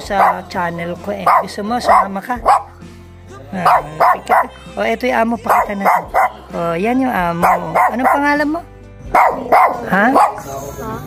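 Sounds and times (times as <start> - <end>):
dog barking: 0.0 - 0.6, 1.2 - 2.8, 3.6 - 4.7, 5.4 - 6.6, 7.2 - 10.6.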